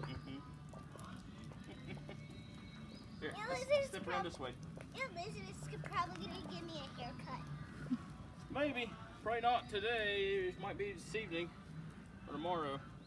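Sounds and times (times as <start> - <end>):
quiet indistinct voices talking: 0.0 - 13.0.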